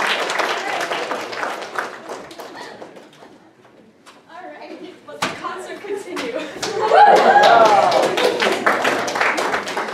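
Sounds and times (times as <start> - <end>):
audience applause: 0.0 - 3.3, 6.7 - 9.9.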